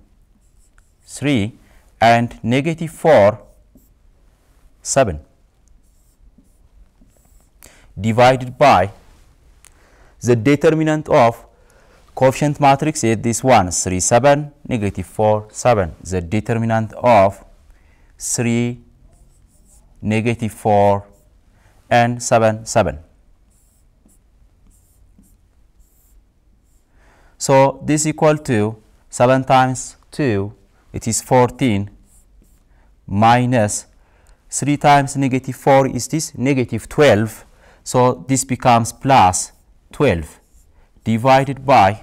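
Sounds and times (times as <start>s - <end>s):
stylus scratching and tapping screen: 0.2s - 1.2s, 3.0s - 4.0s, 5.5s - 7.6s, 19.1s - 21.4s, 23.4s - 26.9s, 32.0s - 32.7s, 38.6s - 42.0s
pen scratching on board: 5.8s - 7.6s, 19.1s - 19.9s, 23.5s - 26.9s, 32.1s - 32.6s.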